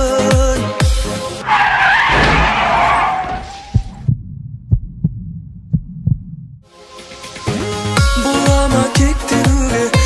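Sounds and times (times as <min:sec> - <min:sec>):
music with a beat: 0:00.0 - 0:01.1, 0:06.7 - 0:10.0
heartbeat thumps: 0:03.7 - 0:06.6.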